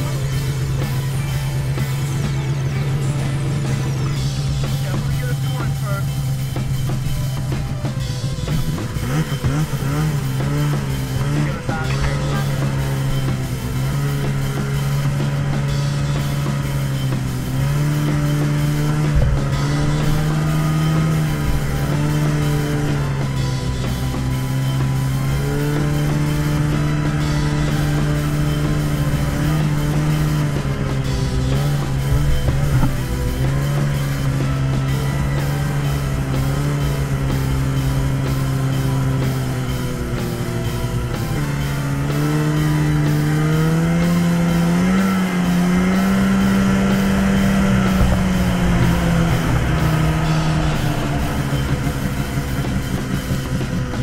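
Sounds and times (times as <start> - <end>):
rock music with steady beat: 0.0 - 54.0
snowmobile engine running: 0.0 - 54.0.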